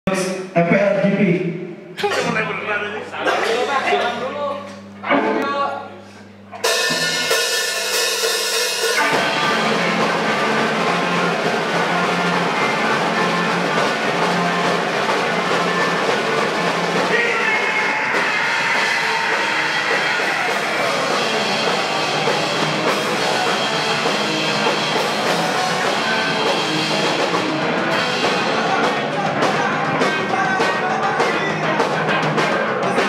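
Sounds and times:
held electric guitar chord: 4.0 - 17.1
drums and distorted guitars: 6.3 - 33.0.

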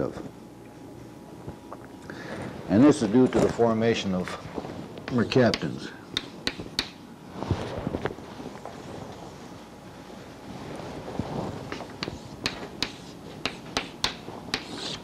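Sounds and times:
chalk tapping on a blackboard: 5.1 - 7.0, 11.7 - 15.0.

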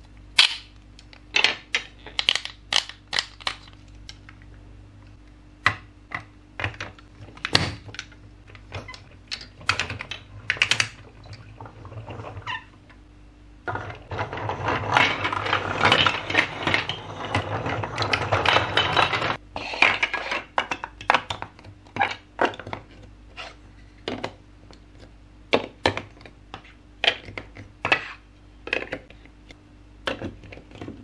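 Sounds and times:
plastic toy blocks clattering: 13.7 - 23.0.

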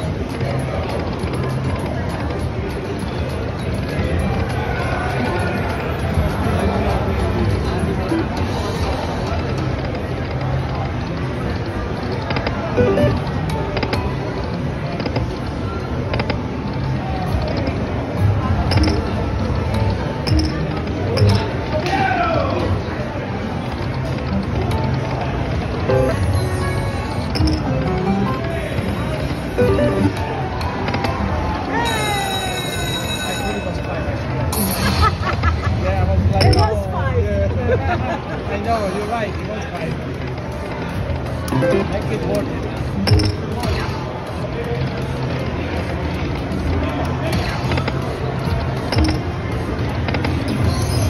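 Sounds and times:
casino chatter: 0.0 - 51.0
slot machine music and effects: 12.8 - 13.6, 25.8 - 30.4, 41.5 - 43.6.

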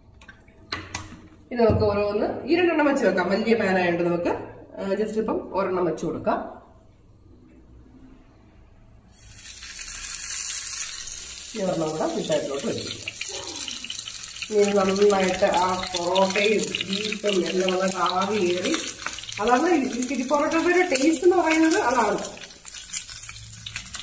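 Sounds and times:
parcels sizzling on hot griddle: 9.1 - 24.0.

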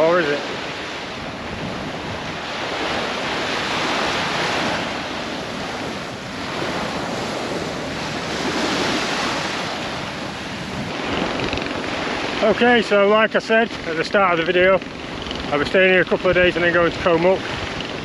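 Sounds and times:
small waves breaking on sand: 0.0 - 18.0.

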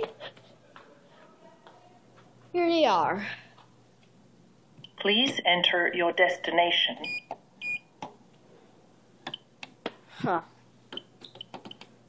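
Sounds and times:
short electronic keypad beeps: 7.0 - 7.9.

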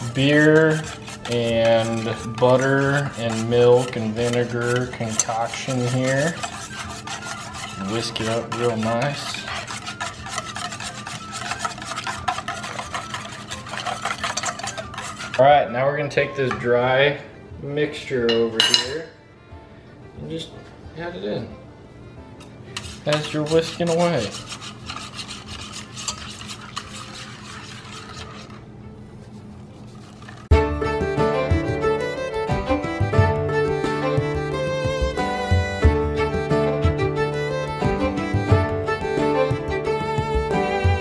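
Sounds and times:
liquid sloshing: 0.0 - 15.4, 22.8 - 28.6
whisk clicking in metal bowl: 0.0 - 15.4, 22.8 - 28.6
background music: 0.0 - 29.2, 29.8 - 41.0.

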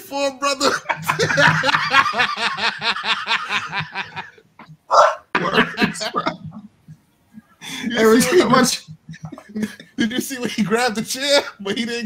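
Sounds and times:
man laughing hard: 0.7 - 4.4, 5.4 - 6.5.

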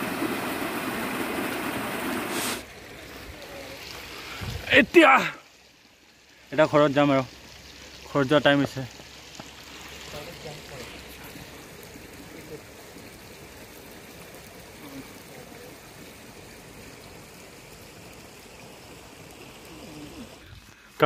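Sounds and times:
stream water trickling: 0.0 - 21.0.

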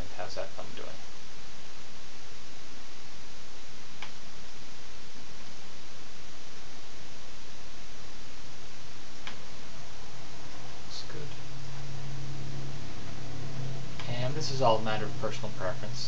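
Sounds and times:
microphone hiss: 0.0 - 16.0
computer mouse clicks: 4.0 - 4.2.

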